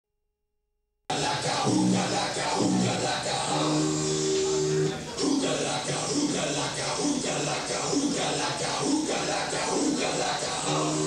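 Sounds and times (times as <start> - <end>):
distorted amplified guitar: 1.1 - 11.0.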